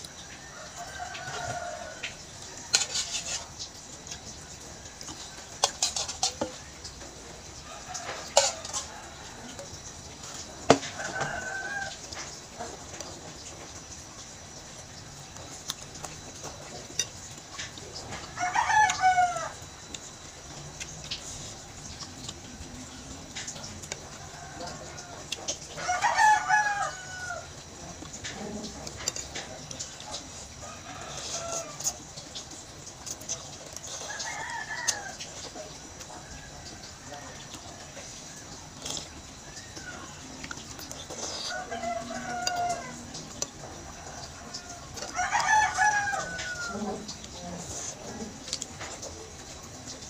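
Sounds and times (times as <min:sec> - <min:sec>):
rooster crowing: 0:00.1 - 0:03.6, 0:07.5 - 0:13.9, 0:17.8 - 0:19.9, 0:21.2 - 0:32.3, 0:33.3 - 0:48.9.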